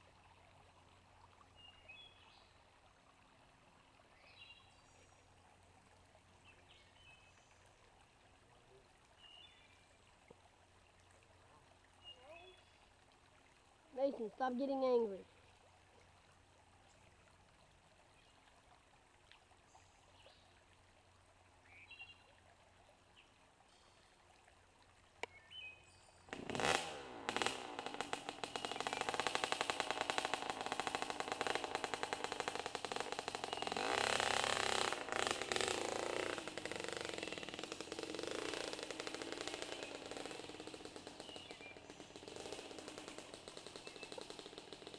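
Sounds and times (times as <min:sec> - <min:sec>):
dirt bike engine running: 0:26.3 - 0:44.9.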